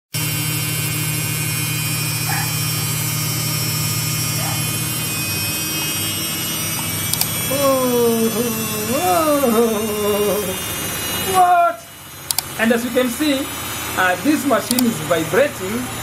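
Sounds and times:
washing machine running: 0.1s - 16.0s
washing machine vibrating: 0.2s - 16.0s.

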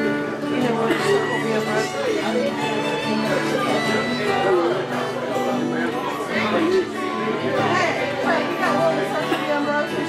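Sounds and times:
acoustic guitars playing chords: 0.0s - 10.0s
people talking: 0.0s - 10.0s.

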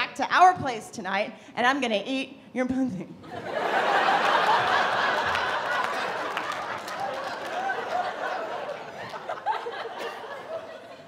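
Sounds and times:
audience laughing: 3.2s - 11.0s.

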